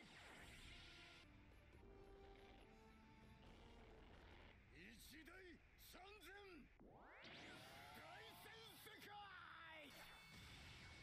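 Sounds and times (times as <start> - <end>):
faint anime soundtrack music: 0.0 - 11.0.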